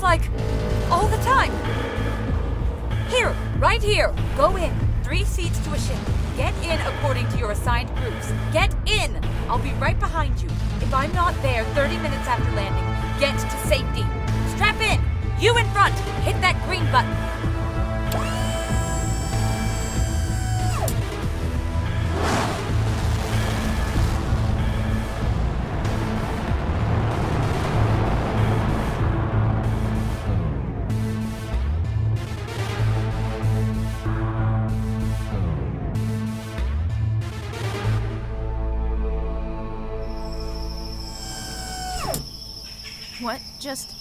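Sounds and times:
low rocket rumble: 0:00.0 - 0:14.4, 0:16.6 - 0:32.3
dramatic music: 0:00.0 - 0:43.2
whoosh: 0:21.9 - 0:30.4
cricket trill: 0:40.0 - 0:44.0.

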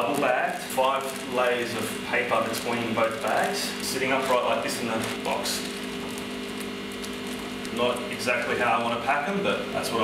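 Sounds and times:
aquarium equipment humming: 0:00.0 - 0:10.0.

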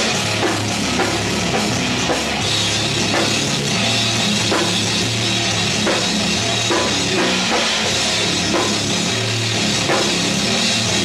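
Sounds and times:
drum kit: 0:00.0 - 0:11.0
heavy metal band playing: 0:00.0 - 0:11.0.

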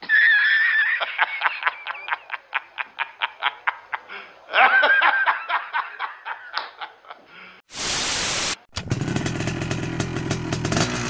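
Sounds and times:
man laughing: 0:00.0 - 0:07.4.

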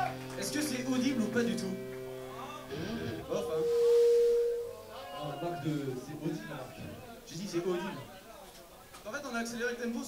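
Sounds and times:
electric guitar: 0:00.0 - 0:05.6.

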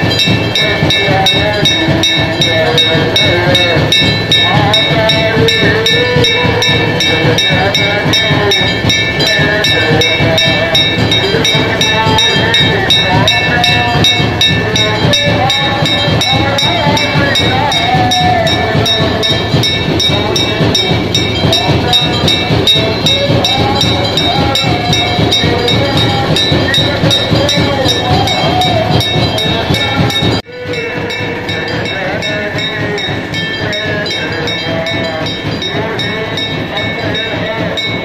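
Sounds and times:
brass bell rung rapidly: 0:00.0 - 0:38.0
person singing: 0:00.0 - 0:38.0.

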